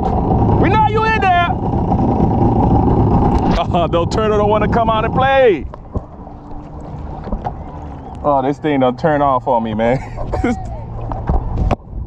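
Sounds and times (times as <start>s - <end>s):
jet ski engine idling: 0.0s - 12.0s
wind on microphone: 0.0s - 12.0s.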